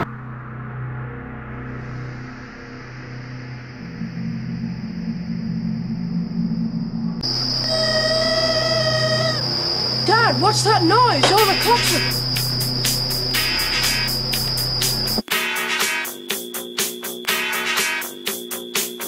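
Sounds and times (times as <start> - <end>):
low droning hum: 0.0 - 10.0
held pitched tone: 7.2 - 15.2.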